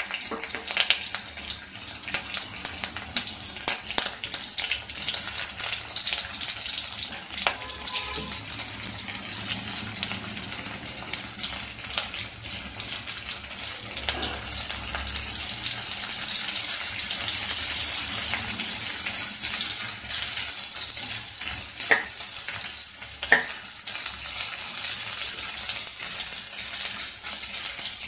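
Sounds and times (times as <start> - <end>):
onions sizzling in hot oil: 0.0 - 28.0
metal spatula scraping pan: 7.1 - 8.8, 14.0 - 14.9.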